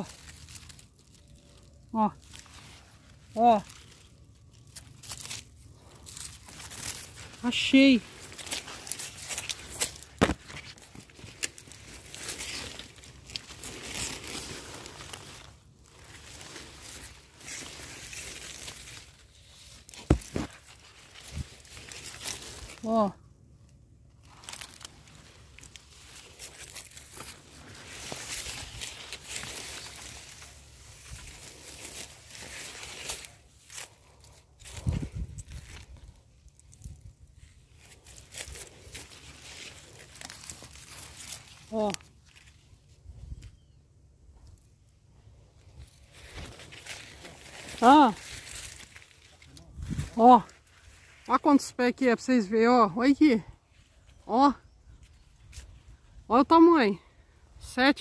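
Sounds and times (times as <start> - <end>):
footsteps on leafy ground: 0.0 - 23.2, 24.1 - 43.0, 45.6 - 51.8
dry leaves rustling and crackling: 0.0 - 58.0.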